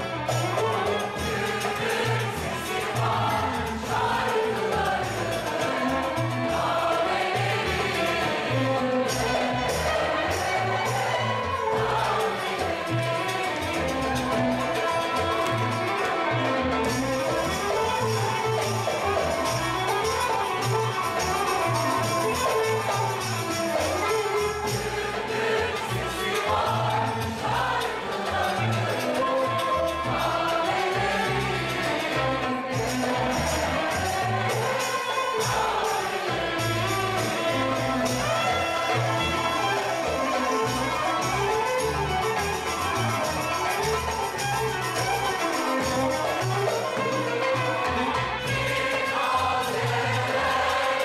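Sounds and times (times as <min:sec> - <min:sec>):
mixed choir singing: 0:00.0 - 0:51.0
zither lute and double bass ensemble: 0:00.0 - 0:51.0.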